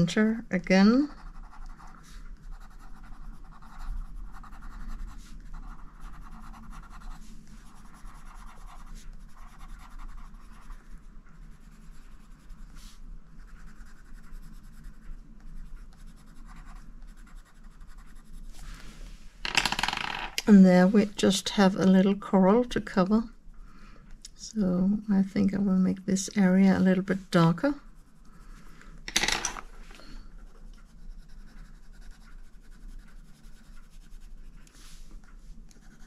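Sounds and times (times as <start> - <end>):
coloured pencil scratching on paper: 0.5 - 18.7, 30.3 - 36.0.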